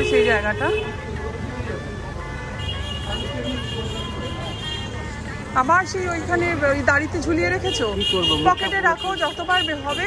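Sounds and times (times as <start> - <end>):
faint voices: 0.0 - 10.0
low rumble of road traffic: 0.0 - 10.0.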